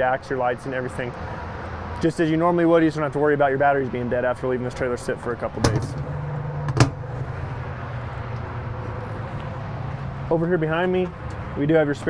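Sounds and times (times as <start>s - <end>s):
metal lid latch snapping shut: 5.6s - 6.0s, 6.7s - 7.0s.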